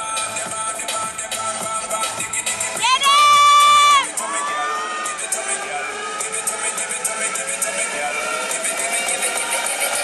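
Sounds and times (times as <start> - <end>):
high-pitched scream: 2.8 - 5.4.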